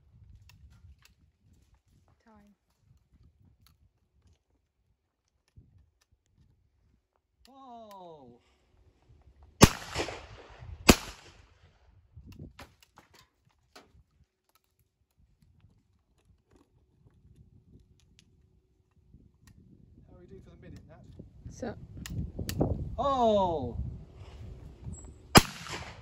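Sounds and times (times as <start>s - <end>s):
person shouting a call: 7.5s - 8.4s, 23.0s - 23.8s
shotgun shots: 9.6s - 11.4s, 25.4s - 26.0s.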